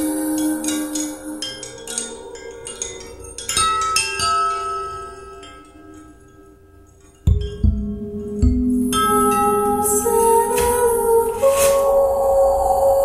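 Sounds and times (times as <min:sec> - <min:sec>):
bell-like mallet percussion: 0:00.0 - 0:13.0.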